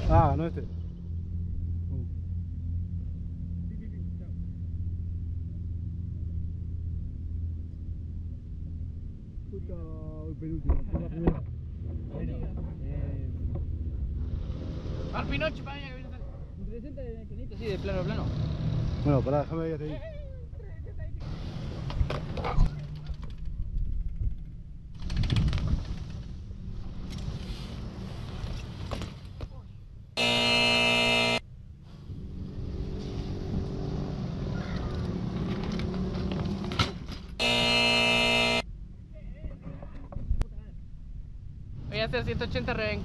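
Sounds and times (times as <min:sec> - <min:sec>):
loud electronic buzzer: 0:30.2 - 0:31.4, 0:37.4 - 0:38.6.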